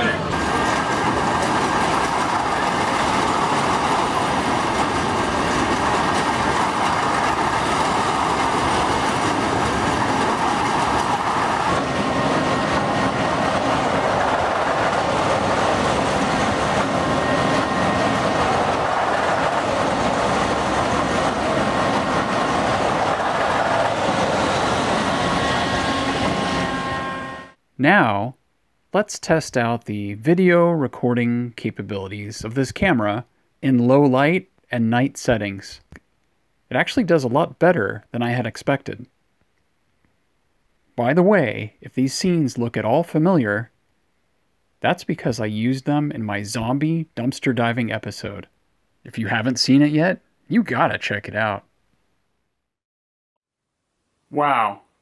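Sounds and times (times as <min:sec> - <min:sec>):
mechanical clatter of rides: 0:00.0 - 0:17.0.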